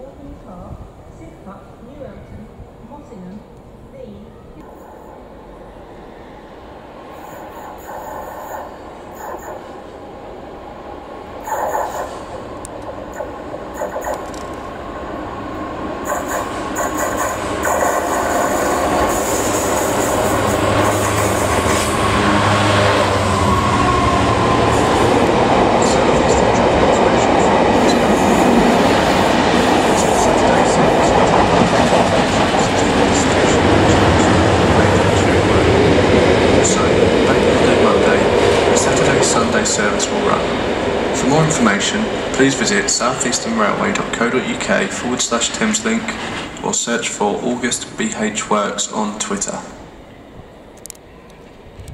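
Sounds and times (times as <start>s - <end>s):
diesel locomotive passing: 0.0s - 51.9s
train wheels rumbling on rails: 4.6s - 50.0s.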